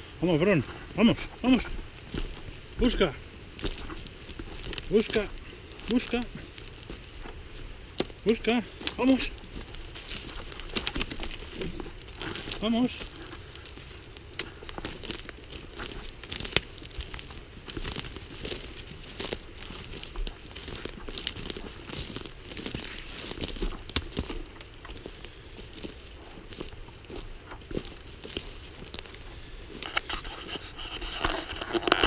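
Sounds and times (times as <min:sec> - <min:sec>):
footsteps crunching on forest floor: 0:00.0 - 0:32.0
sticks snapping underfoot: 0:00.6 - 0:32.0.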